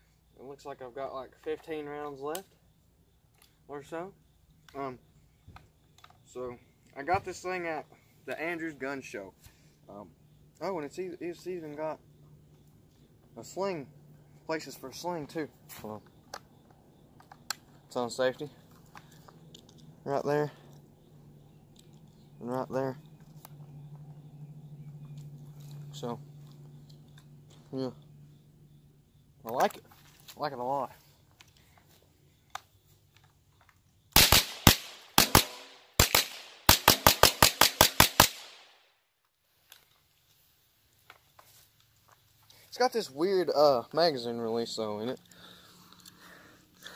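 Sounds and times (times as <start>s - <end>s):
rifle shots: 34.2s - 38.7s.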